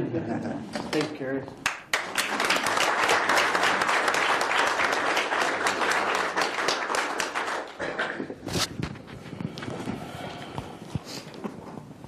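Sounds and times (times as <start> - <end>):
audience applause: 1.6 - 8.2.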